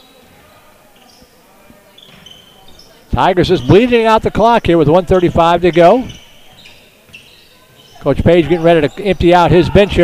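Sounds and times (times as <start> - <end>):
short high squeaks: 2.0 - 2.8.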